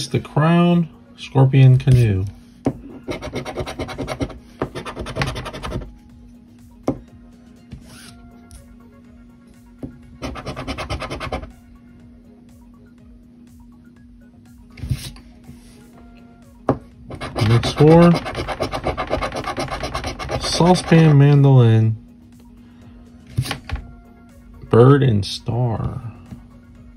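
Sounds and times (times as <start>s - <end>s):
coin scratching lottery ticket: 3.1s - 5.8s, 10.2s - 11.5s, 17.1s - 21.2s.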